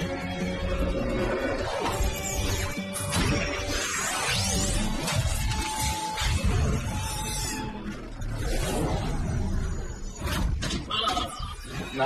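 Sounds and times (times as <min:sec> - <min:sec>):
background music: 0:00.0 - 0:12.0
robot transformation sound effects: 0:00.6 - 0:12.0.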